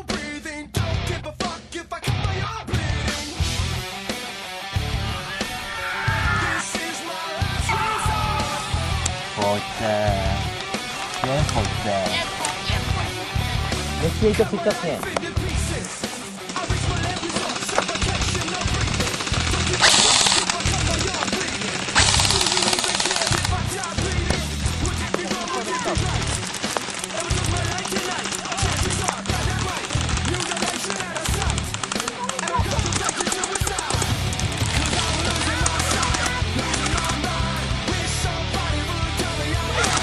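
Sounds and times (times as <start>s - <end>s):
loud rock music: 0.0s - 40.0s.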